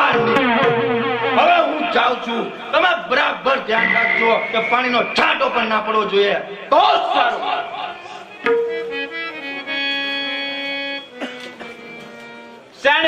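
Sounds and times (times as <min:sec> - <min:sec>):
reedy keyboard chords: 0:00.0 - 0:12.8.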